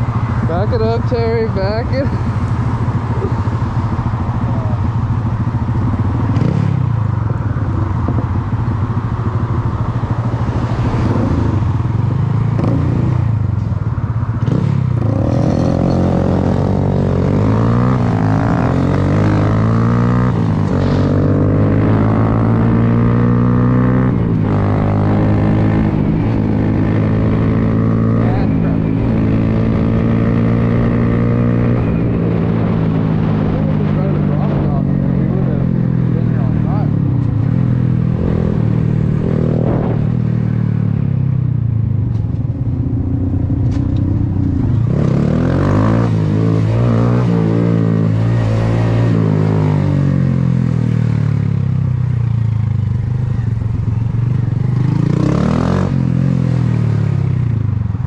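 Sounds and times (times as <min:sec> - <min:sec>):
motorcycle engine: 0:00.0 - 0:58.0
wind rumble on microphone: 0:20.3 - 0:45.2.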